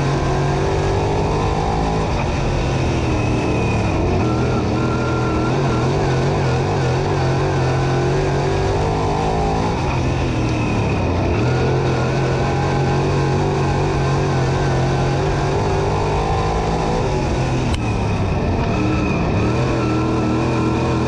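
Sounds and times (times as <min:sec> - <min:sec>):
race car engine running hard: 0:00.0 - 0:21.0.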